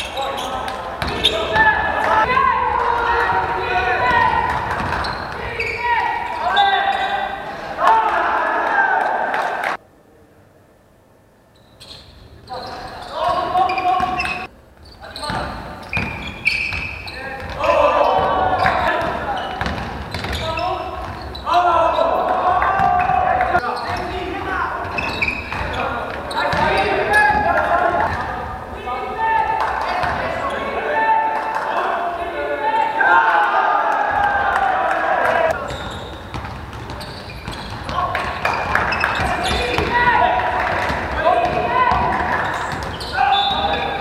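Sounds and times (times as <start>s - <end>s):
players and coaches shouting: 0.0s - 9.8s, 17.1s - 19.6s, 20.3s - 36.0s, 37.8s - 44.0s
basketball bouncing on wooden court: 0.6s - 1.7s, 3.2s - 5.8s, 15.3s - 21.4s, 24.8s - 28.3s, 30.0s - 30.3s, 35.6s - 40.0s, 40.6s - 44.0s.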